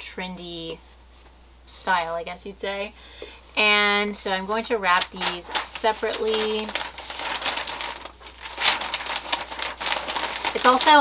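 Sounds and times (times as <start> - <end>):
packing paper rustling and crinkling: 4.8 - 11.0.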